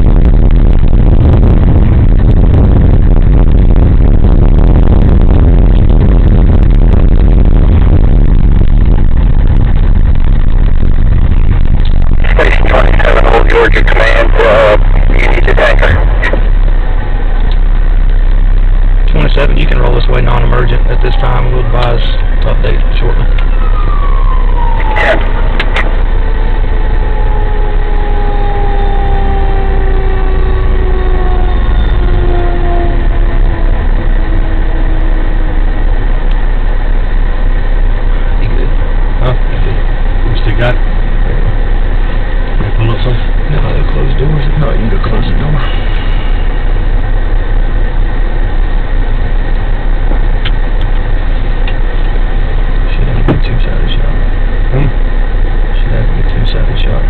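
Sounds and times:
vehicle engines idling: 0.0 - 57.0
mechanical siren winding down: 20.8 - 36.4.

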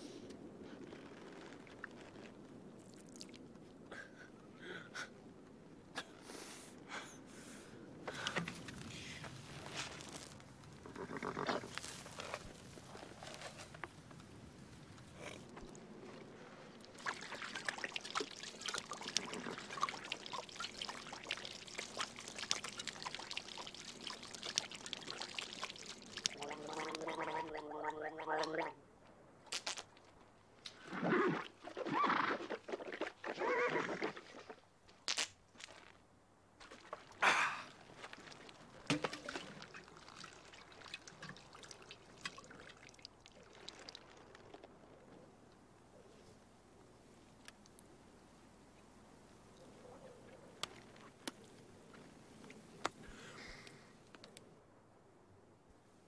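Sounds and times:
water glugging from a canteen: 15.2 - 28.7, 36.6 - 44.9.

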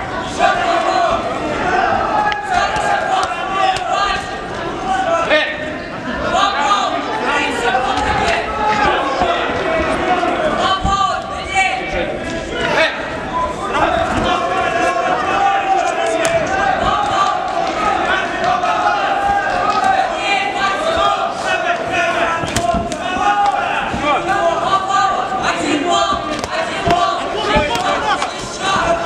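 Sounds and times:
people shouting: 0.0 - 5.5, 6.2 - 11.8, 12.5 - 29.0.

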